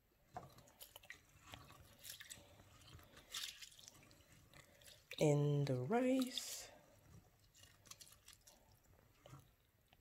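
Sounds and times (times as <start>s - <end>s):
rice rubbed by hand in water: 1.1s - 8.7s.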